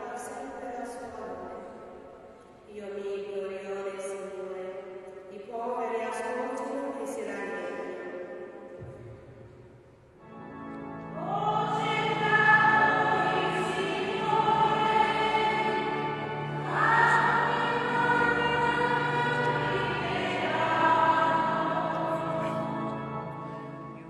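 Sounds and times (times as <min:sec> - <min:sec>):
electronic organ chords: 0:10.2 - 0:24.0
choir singing a hymn: 0:11.1 - 0:24.0.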